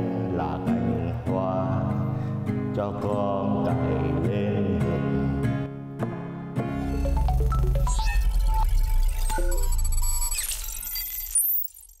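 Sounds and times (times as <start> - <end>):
melodic jingle notes: 6.8 - 10.1
glittering high chimes: 6.8 - 12.0.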